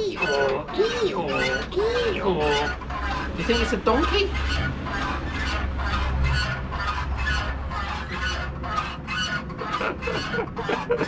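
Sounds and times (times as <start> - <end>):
motorcycle suspension squeaking: 0.0 - 11.0.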